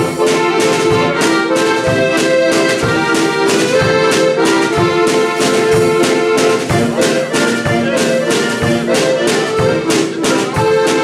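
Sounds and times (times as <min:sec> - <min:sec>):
button accordions playing: 0:00.0 - 0:11.0
drum kit beat: 0:00.0 - 0:11.0.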